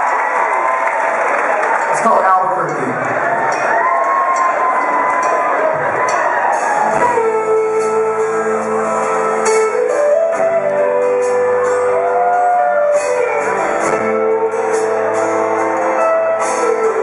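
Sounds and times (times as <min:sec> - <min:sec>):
audience noise: 0:00.0 - 0:17.0
rock band playing sustained chords: 0:02.4 - 0:17.0.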